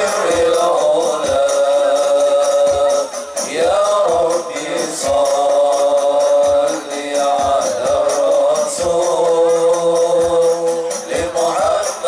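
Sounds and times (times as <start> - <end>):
frame drums and bass drum: 0.0 - 12.0
group chanting in unison: 0.0 - 12.0.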